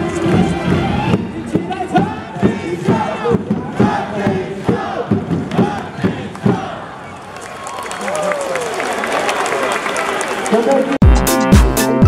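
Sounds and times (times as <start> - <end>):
steady beat: 0.0 - 6.8, 11.0 - 12.0
crowd chanting: 0.0 - 7.2.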